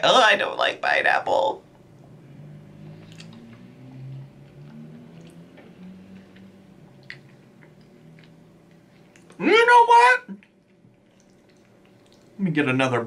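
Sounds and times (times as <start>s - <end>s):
low closed-mouth humming: 0.0s - 12.6s
wet mouth clicks: 3.0s - 3.5s, 6.1s - 8.4s, 10.4s - 12.4s
person chewing food: 3.0s - 3.7s, 4.4s - 9.4s, 10.4s - 12.4s.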